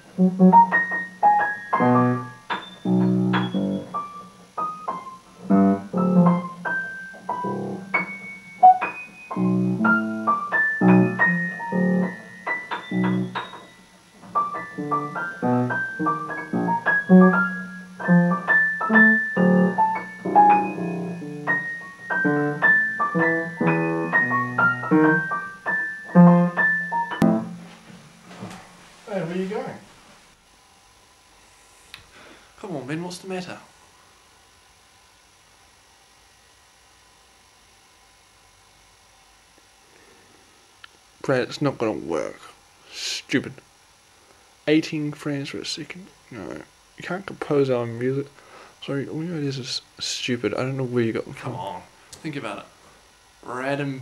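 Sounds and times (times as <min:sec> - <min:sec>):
piano duet: 0:00.0 - 0:27.7.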